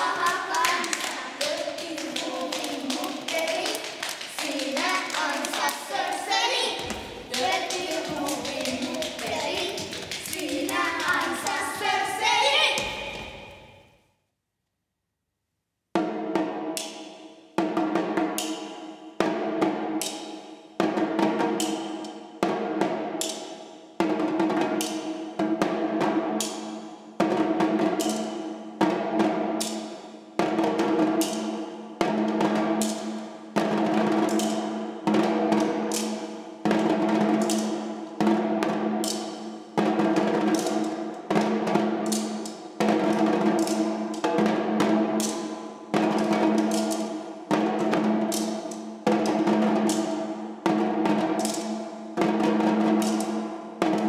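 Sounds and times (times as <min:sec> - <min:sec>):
djembe drums struck with sticks: 0:06.8 - 0:12.0, 0:30.4 - 0:54.0.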